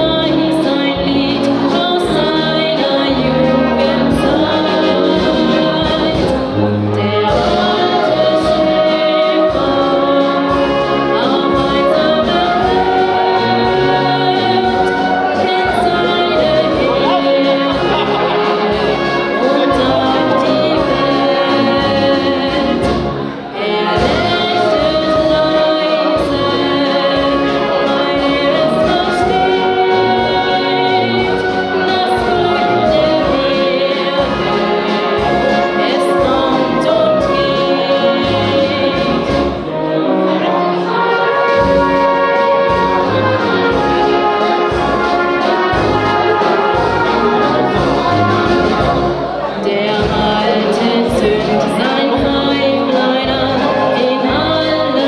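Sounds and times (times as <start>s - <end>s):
woman singing into a microphone: 0.0s - 18.2s, 19.4s - 39.3s, 49.4s - 55.0s
brass and wind band playing: 0.0s - 55.0s.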